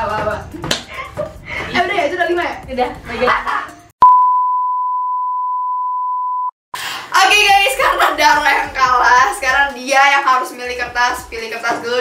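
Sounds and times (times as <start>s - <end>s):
steady test tone beep: 4.0s - 6.5s.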